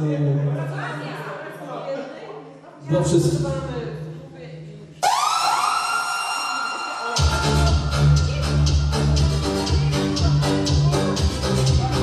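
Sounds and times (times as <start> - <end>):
electronic siren-like tone: 5.0 - 7.9.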